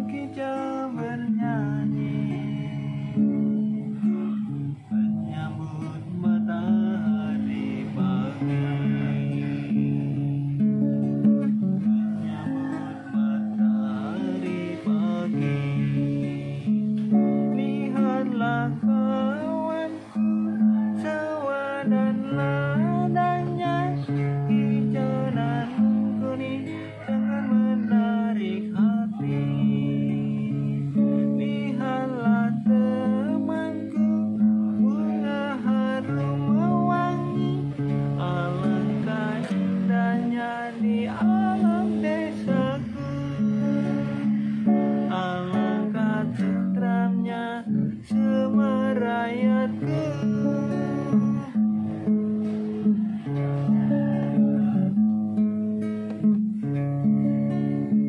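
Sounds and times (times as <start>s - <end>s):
man singing: 0.0s - 55.4s
acoustic guitar strumming chords: 0.0s - 58.0s.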